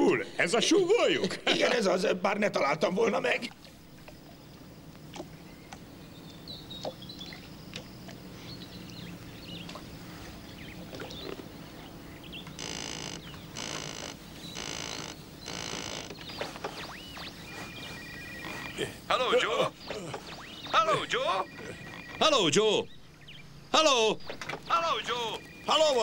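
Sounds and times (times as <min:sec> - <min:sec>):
telephone bell ringing: 0:18.0 - 0:18.7, 0:21.0 - 0:22.3.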